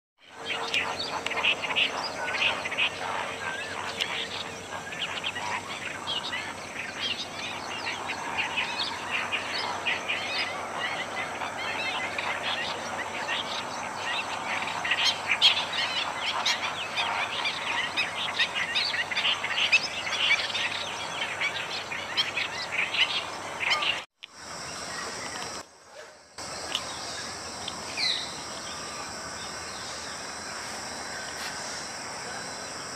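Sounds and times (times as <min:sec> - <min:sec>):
small birds chirping: 0:00.2 - 0:25.6, 0:26.4 - 0:32.9.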